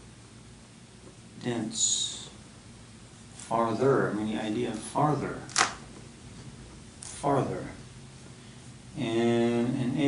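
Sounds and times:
man speaking: 0:01.4 - 0:02.4, 0:03.4 - 0:05.6, 0:07.1 - 0:07.8, 0:08.9 - 0:10.0.

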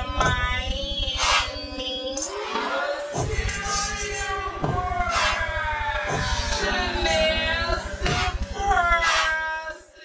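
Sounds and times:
background music with pulsing bass: 0:00.0 - 0:09.8
high-pitched voice singing: 0:00.0 - 0:10.0.

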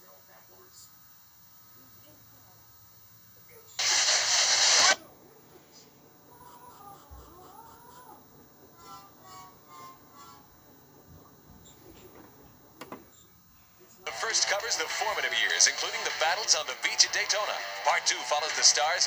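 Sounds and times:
loud burst of hiss: 0:03.8 - 0:05.1
faint wavering voice-like sounds: 0:05.0 - 0:16.2.

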